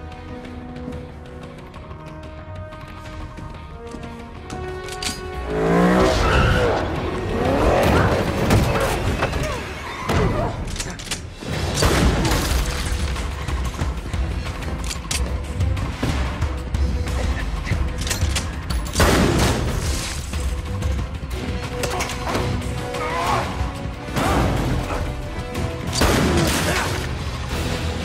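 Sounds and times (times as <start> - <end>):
action film score: 0.0 - 28.0.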